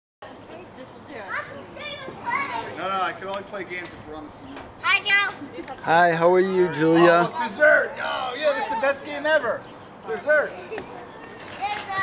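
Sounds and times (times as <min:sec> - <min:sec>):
children's high-pitched calls: 0:01.2 - 0:02.8, 0:04.8 - 0:05.5, 0:10.7 - 0:12.0.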